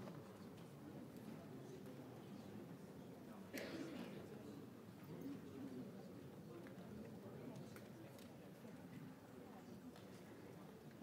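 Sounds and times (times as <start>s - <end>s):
murmur of people talking: 0.0s - 11.0s.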